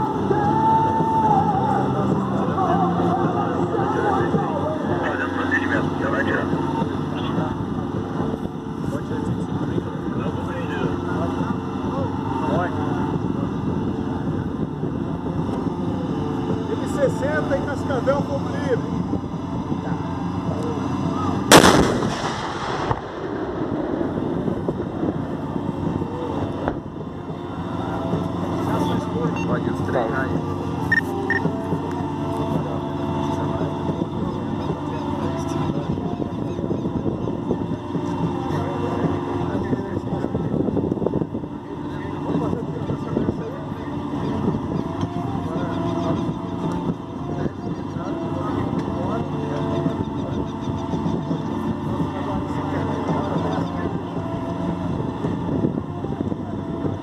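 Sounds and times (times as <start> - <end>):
vehicle engines running: 0.0 - 57.0
loud cannon shot: 21.5 - 24.5.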